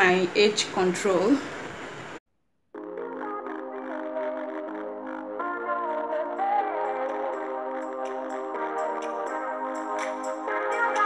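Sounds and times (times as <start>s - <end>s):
sustained chords: 2.8s - 11.0s.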